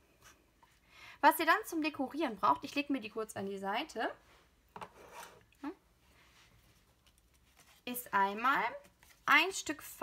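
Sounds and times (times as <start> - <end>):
paper rustling: 6.5 - 8.0.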